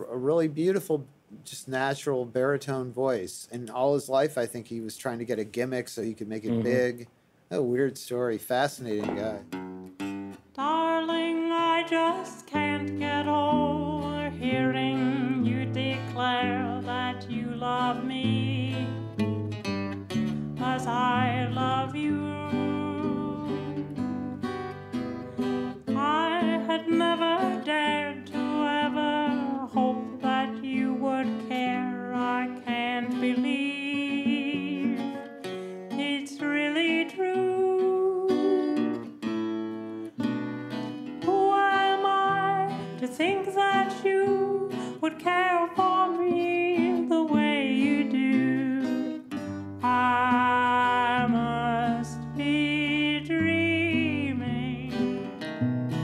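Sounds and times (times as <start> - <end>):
acoustic guitar song: 6.4 - 7.8, 8.8 - 56.0.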